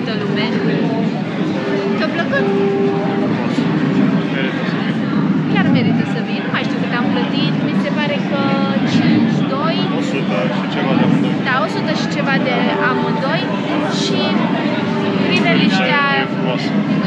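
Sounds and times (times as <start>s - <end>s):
crowd chatter: 0.0s - 17.0s
people talking close by: 0.0s - 17.0s.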